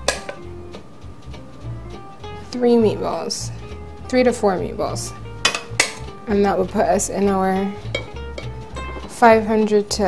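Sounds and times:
background music: 0.0s - 10.0s
metal scoop clinking on pot: 5.4s - 6.1s, 7.9s - 9.2s.

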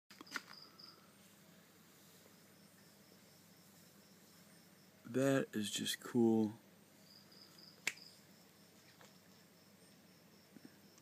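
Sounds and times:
high-pitched insect chirps: 7.0s - 11.0s.

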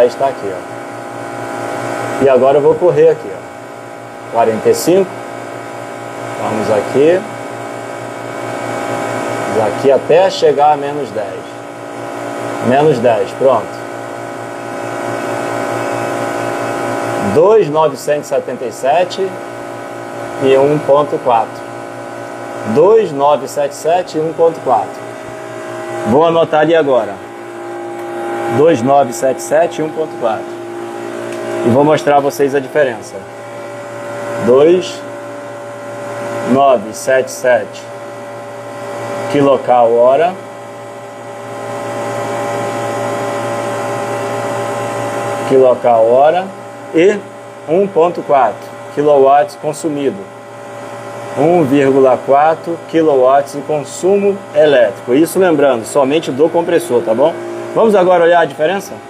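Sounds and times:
refrigeration compressor humming: 0.0s - 59.0s.

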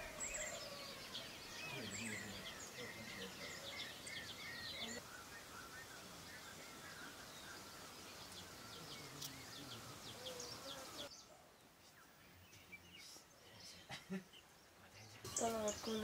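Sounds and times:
faint birdsong: 0.0s - 16.0s.

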